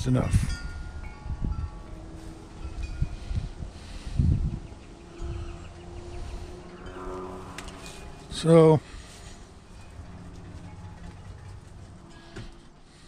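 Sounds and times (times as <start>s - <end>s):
wind chimes ringing: 0.0s - 4.0s, 4.6s - 12.6s.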